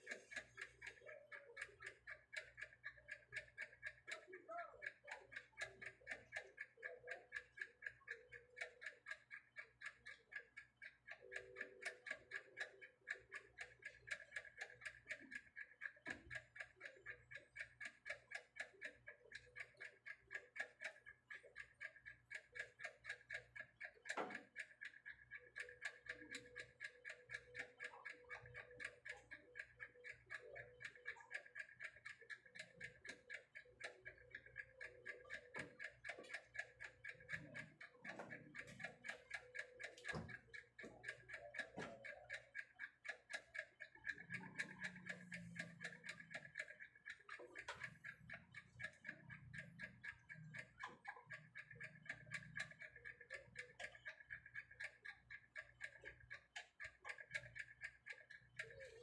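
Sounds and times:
mechanical ticking: 0.0 - 59.0.

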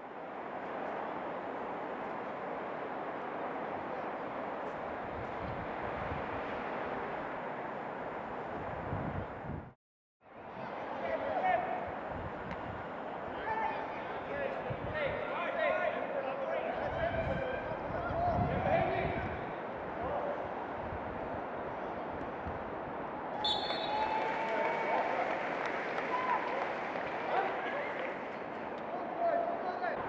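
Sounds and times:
distant shouting of players: 23.3 - 28.3.

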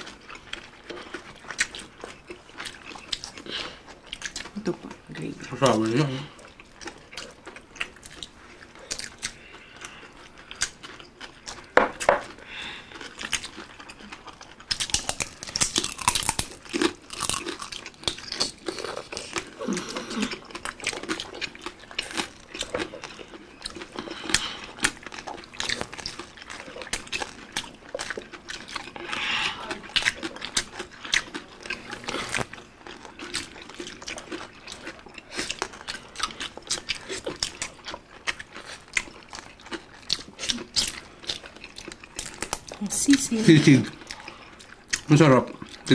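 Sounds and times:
people chewing crispy food: 0.0 - 45.9.

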